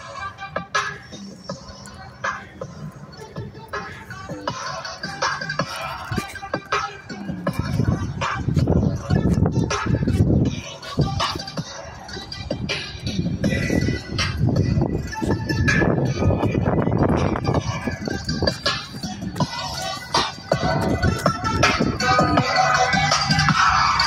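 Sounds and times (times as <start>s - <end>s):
distant instrumental music from speakers: 0.0s - 24.0s.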